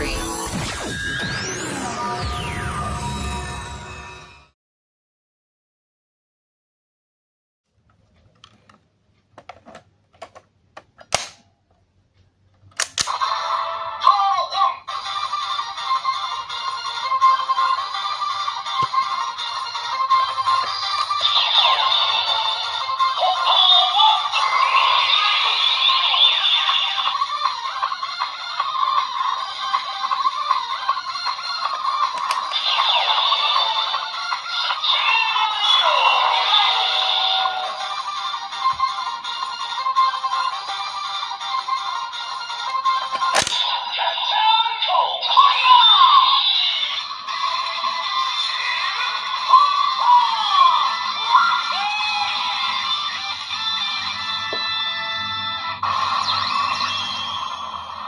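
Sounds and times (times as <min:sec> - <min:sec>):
synthetic voice singing: 0:13.7 - 0:42.1, 0:43.8 - 0:53.2
toy electronic music: 0:14.8 - 0:58.0.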